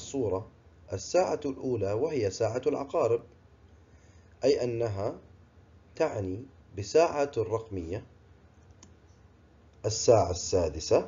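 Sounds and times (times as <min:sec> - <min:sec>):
person speaking: 0:00.0 - 0:03.4, 0:09.8 - 0:11.0
faint click: 0:08.6 - 0:09.8.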